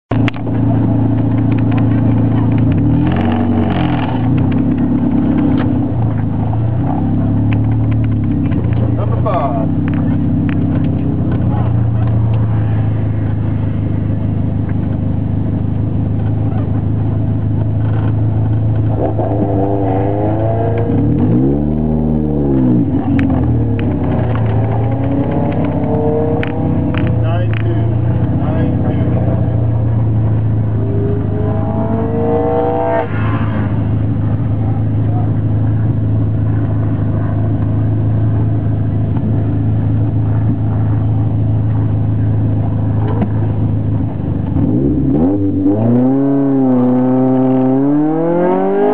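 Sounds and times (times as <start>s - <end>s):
car accelerating away: 0.1s - 15.0s, 16.2s - 48.9s
car engine idling: 0.1s - 45.1s.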